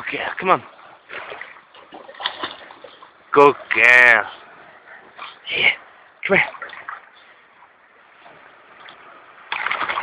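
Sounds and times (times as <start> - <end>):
dog swimming splashes: 0.6 - 3.8, 4.4 - 7.2, 8.2 - 10.0.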